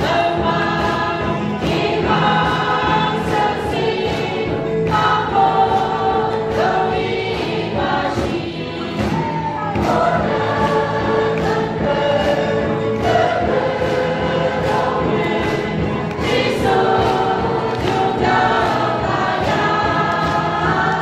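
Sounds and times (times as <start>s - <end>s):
band accompaniment: 0.0s - 21.0s
group singing gospel song: 0.0s - 21.0s.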